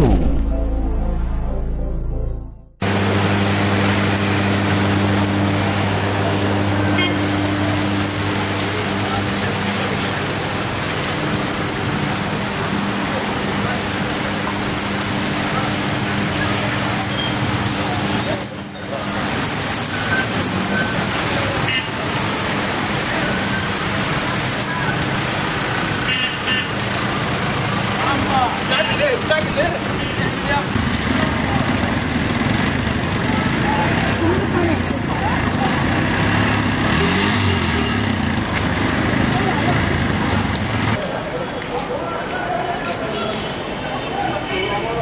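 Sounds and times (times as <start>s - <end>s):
rain and tyres on wet road: 2.8s - 45.0s.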